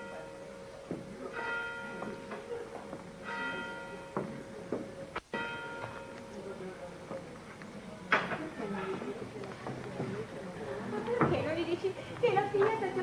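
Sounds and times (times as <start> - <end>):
bell tolling: 0.0 - 4.5.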